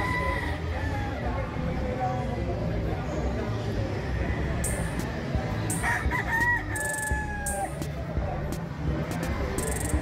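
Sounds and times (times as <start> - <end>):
rooster crowing: 0.0 - 1.2, 5.8 - 7.7
crowd noise in a hall: 0.0 - 10.0.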